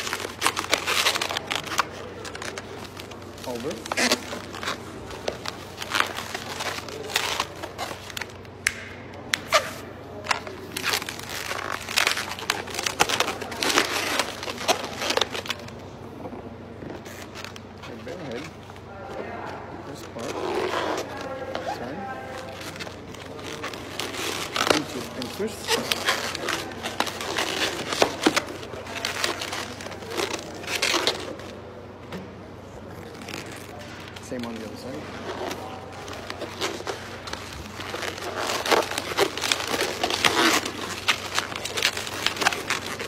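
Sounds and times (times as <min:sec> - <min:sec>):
balloons squeaking and rubbing: 0:00.0 - 0:08.6, 0:09.2 - 0:32.0, 0:32.6 - 0:43.0.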